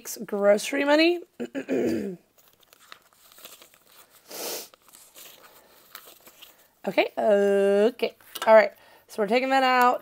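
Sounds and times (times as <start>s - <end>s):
paper banknotes rustling: 2.3s - 6.8s.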